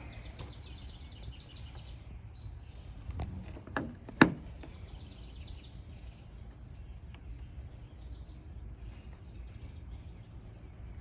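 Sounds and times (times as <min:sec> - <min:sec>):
bird chirping: 0:00.0 - 0:11.0
low outdoor rumble: 0:00.0 - 0:11.0.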